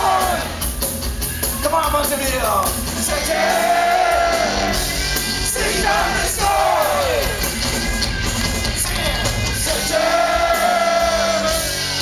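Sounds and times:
drums: 0.0 - 12.0
rock music on amplified cellos: 0.0 - 12.0.

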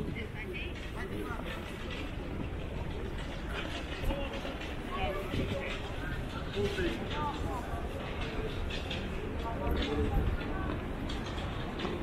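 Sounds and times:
indistinct voices of passers-by: 0.0 - 12.0.

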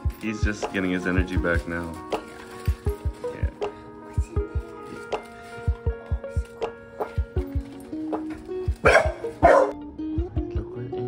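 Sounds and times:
background music with steady beat: 0.0 - 11.0
dog barking: 8.8 - 9.8.

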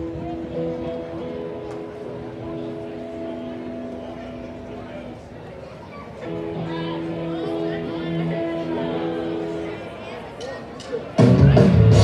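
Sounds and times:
live band holding a chord: 11.2 - 12.0.

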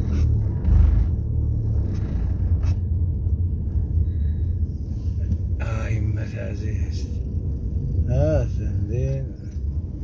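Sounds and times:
car rumble from inside cabin: 0.0 - 10.0.

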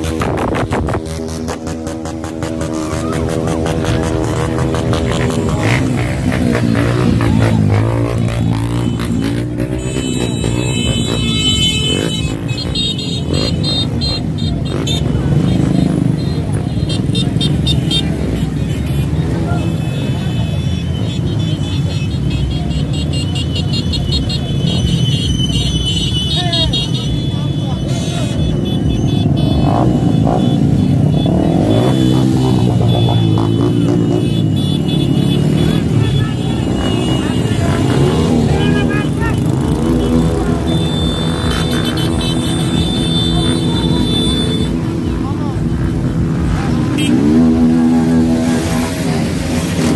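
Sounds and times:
crowd voices: 0.0 - 49.9
motorcycle engines passing: 0.0 - 49.9.

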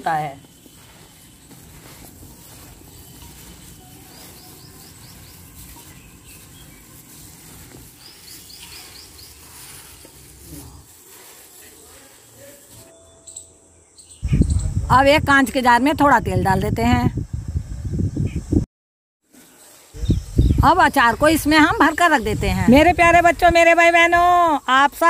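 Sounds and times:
bird chirping: 0.0 - 10.4, 11.8 - 14.8
gloved hand mixing in steel bowl: 0.0 - 12.9.

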